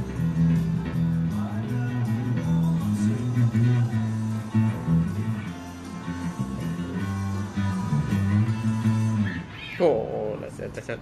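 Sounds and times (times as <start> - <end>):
electric bass guitar plucked notes: 0.0 - 10.6.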